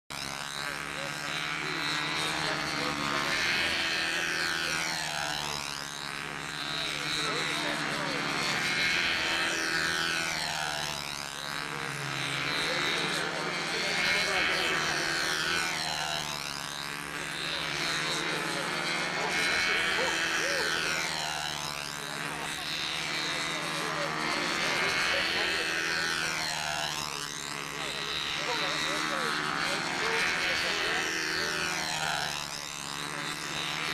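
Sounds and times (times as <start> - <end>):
model airplane engines droning: 0.1 - 33.9.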